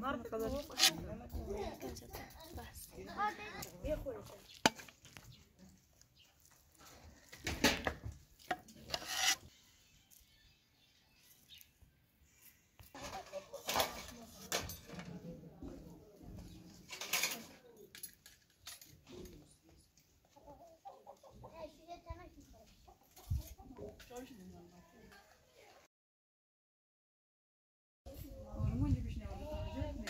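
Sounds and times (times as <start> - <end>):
chicken clucking: 20.2 - 21.7.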